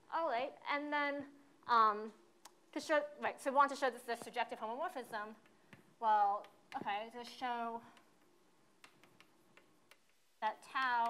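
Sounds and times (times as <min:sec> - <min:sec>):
chalk tapping on blackboard: 0:05.4 - 0:07.3, 0:07.9 - 0:11.0.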